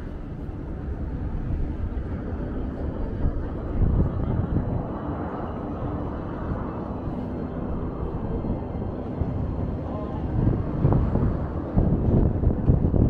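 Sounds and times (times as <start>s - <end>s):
low city rumble: 0.0s - 13.0s.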